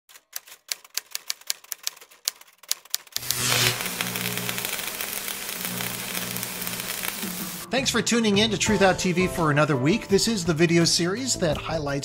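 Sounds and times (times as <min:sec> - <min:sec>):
typewriter keys clacking: 0:00.1 - 0:03.2
static hiss: 0:03.2 - 0:07.7.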